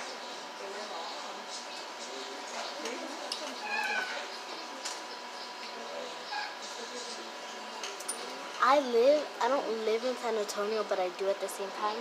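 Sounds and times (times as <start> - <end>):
high meow-like cry: 3.6 - 4.3.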